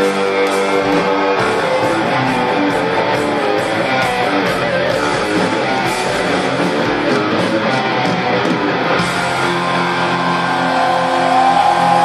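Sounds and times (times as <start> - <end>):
electric guitar sustained notes: 0.0 - 12.0
hard rock band playing: 0.0 - 12.0.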